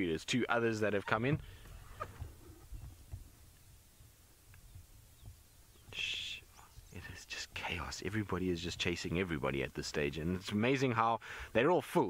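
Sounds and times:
man speaking: 0:00.0 - 0:01.4, 0:05.9 - 0:12.0
short breathy hiss: 0:11.2 - 0:11.6.

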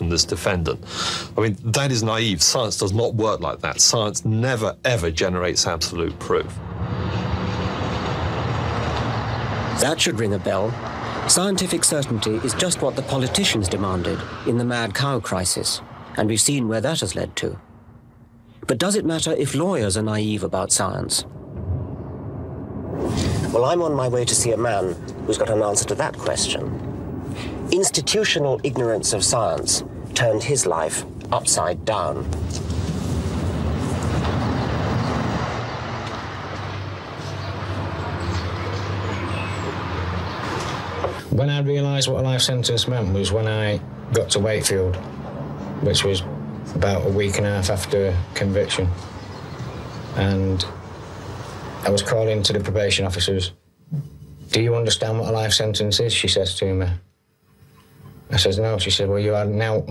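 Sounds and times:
car engine hum: 0:05.4 - 0:18.6, 0:21.2 - 0:41.2.

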